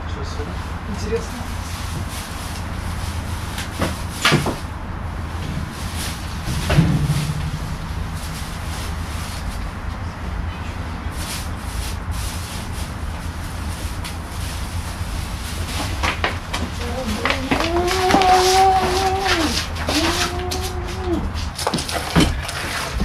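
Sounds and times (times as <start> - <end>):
low outdoor rumble: 0.0 - 23.0
rubbish rustling in a bin: 1.3 - 4.7, 11.0 - 23.0.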